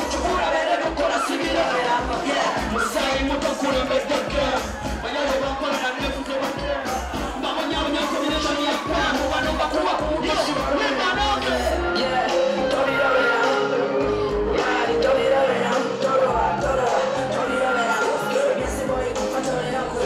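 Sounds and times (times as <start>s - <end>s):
crowd noise: 0.0s - 20.0s
loud music with singing: 0.0s - 20.0s.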